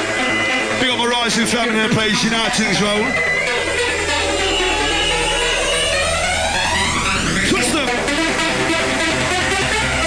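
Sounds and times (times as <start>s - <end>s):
held synth chord: 0.0s - 10.0s
low bass drone: 0.0s - 10.0s
rising synth sweep: 0.0s - 10.0s.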